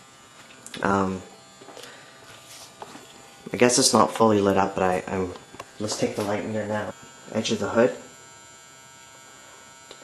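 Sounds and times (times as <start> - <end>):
grow light electrical hum: 0.0 - 10.0.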